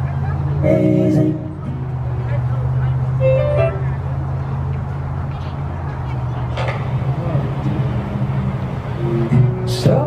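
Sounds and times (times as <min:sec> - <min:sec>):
short pitched notes: 0:03.2 - 0:04.1.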